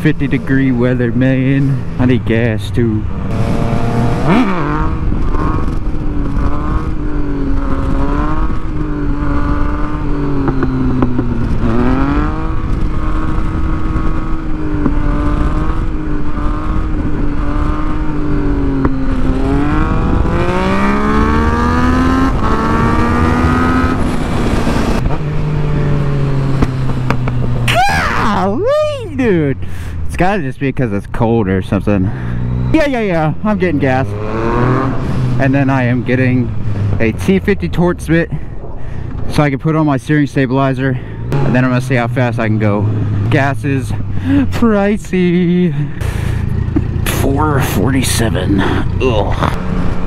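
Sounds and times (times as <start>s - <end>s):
motorcycle engine running: 0.0s - 29.8s, 41.0s - 50.0s
wind rushing over microphone: 3.0s - 28.8s, 34.1s - 39.6s.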